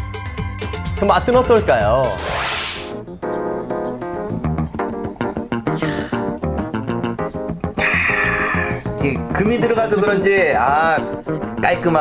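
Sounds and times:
swoosh sound effect: 2.0s - 3.0s.

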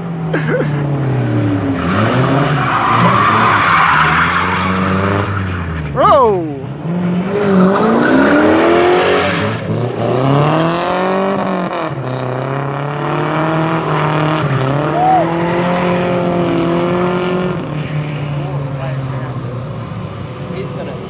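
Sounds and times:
car engines revving: 0.0s - 21.0s
tires squealing: 1.1s - 12.4s, 13.0s - 19.3s.

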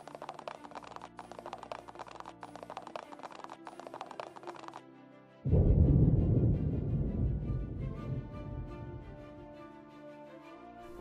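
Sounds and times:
rapid clicking: 0.0s - 4.8s
background music: 0.0s - 11.0s.

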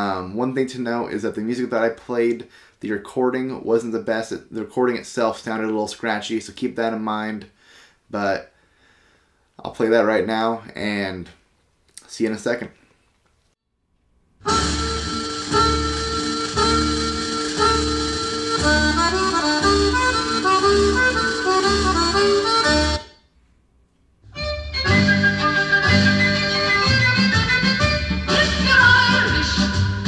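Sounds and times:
recorded music through speakers: 14.4s - 23.3s, 24.2s - 30.0s.

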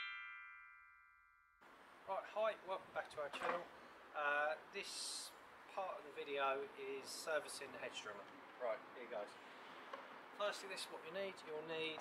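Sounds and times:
faint outdoor background: 0.0s - 12.0s.

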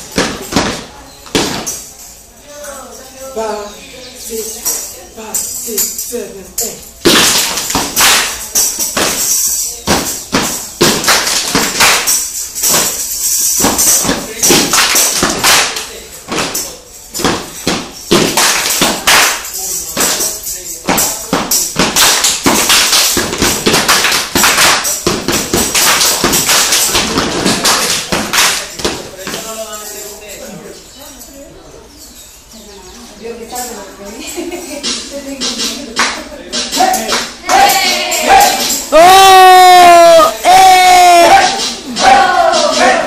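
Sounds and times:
hand claps: 7.0s - 29.5s, 34.8s - 43.0s
foot stomps on tiled floor: 20.9s - 29.4s.

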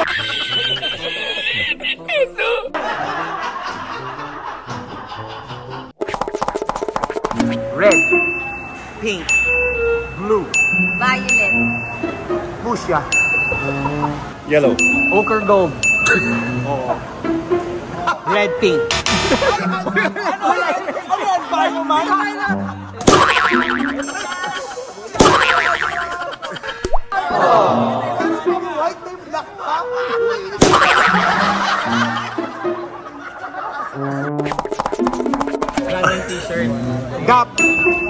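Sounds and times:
quick run of clicks: 6.0s - 7.6s, 34.4s - 35.9s
bell-like ding: 7.9s - 12.1s, 13.1s - 13.8s, 14.8s - 16.7s, 37.6s - 38.0s
wobbling boing: 23.1s - 24.3s, 25.2s - 26.2s, 30.6s - 31.6s.

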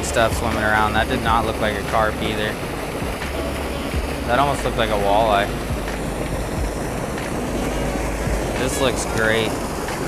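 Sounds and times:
water pouring into churning pool: 0.0s - 10.0s.

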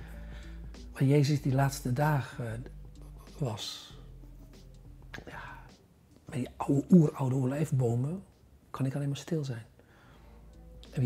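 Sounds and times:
faint background music: 0.0s - 11.0s
person whispering: 5.1s - 5.7s.

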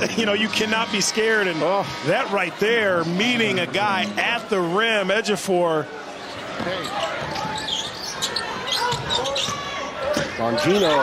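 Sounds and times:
sneakers squeaking on floor: 6.2s - 11.0s.

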